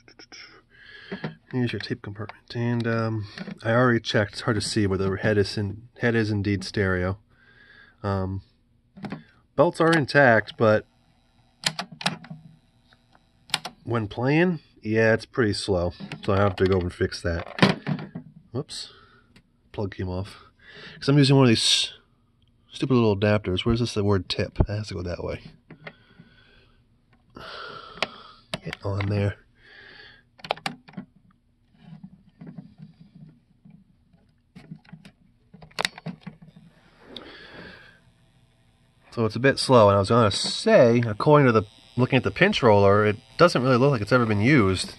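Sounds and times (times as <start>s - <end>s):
faint motor hum: 0.0s - 30.4s, 31.2s - 44.9s
sharp mechanical clicks: 11.6s - 12.2s
cassette deck keys clicking: 30.4s - 31.1s, 34.7s - 36.5s.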